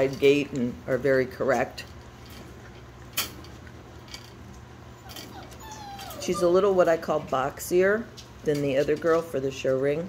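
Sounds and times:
puppies chewing on fingers: 0:01.9 - 0:07.3.

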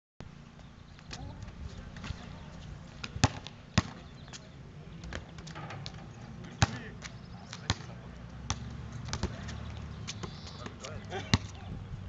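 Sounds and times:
basketball bouncing on hard court: 0:03.0 - 0:04.0, 0:08.5 - 0:11.6.

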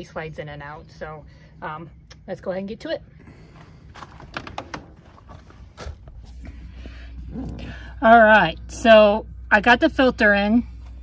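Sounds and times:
low steady hum: 0:00.0 - 0:11.0
light handling clicks and knocks: 0:03.9 - 0:06.0.

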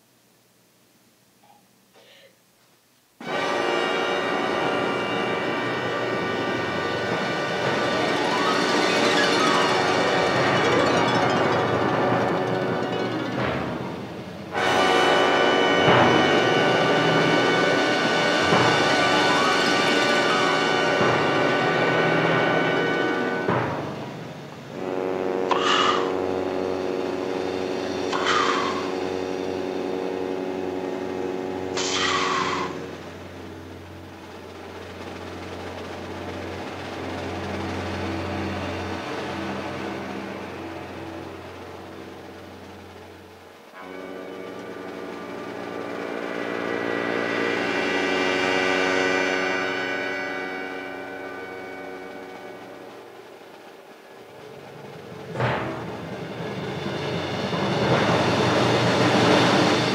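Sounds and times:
noisy rush: 0:03.2 - 0:59.9
orchestral film music: 0:03.2 - 0:59.9
high falling sweep: 0:06.2 - 0:14.6.

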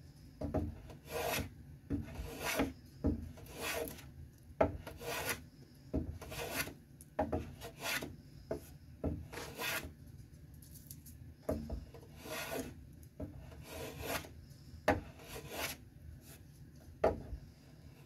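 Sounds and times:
hand plane scraping wood: 0:00.8 - 0:04.0, 0:04.8 - 0:05.4, 0:06.2 - 0:06.8, 0:07.4 - 0:08.1, 0:09.3 - 0:09.9, 0:12.1 - 0:14.3, 0:15.0 - 0:16.4.

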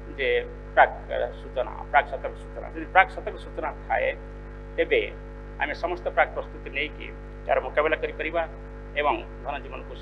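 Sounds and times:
man speaking through pa: 0:00.0 - 0:04.2, 0:04.8 - 0:10.0
electrical mains hum: 0:00.0 - 0:10.0.

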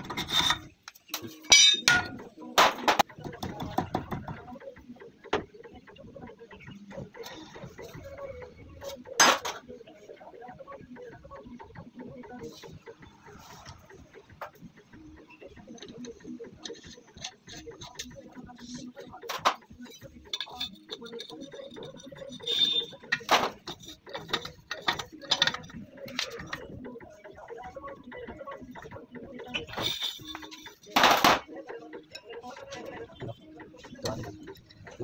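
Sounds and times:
metal tool clicking and scraping: 0:00.0 - 0:02.2, 0:19.3 - 0:26.6, 0:29.6 - 0:31.2
metal tools clinking: 0:01.4 - 0:02.2.

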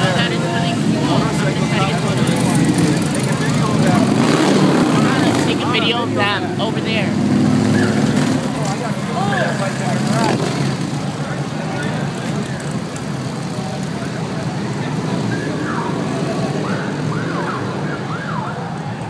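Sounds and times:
crowd voices and shouts: 0:00.0 - 0:19.0
motorcycles riding past: 0:00.0 - 0:19.0.

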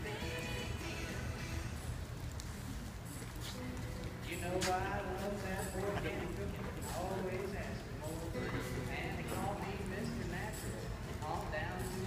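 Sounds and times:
horse hoofbeats on dirt: 0:01.7 - 0:12.0
people talking: 0:04.2 - 0:12.0.

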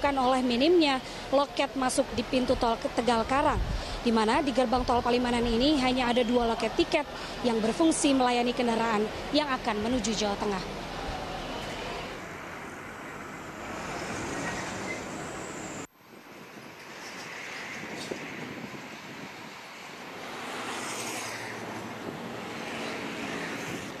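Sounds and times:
traffic engines and road noise: 0:00.0 - 0:24.0.

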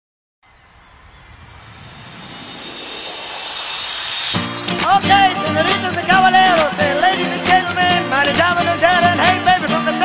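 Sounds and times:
rushing whoosh riser: 0:00.4 - 0:06.6.

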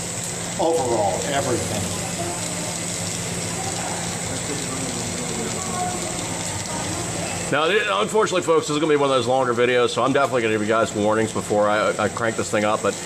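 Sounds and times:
torch flame hissing: 0:00.0 - 0:13.0.

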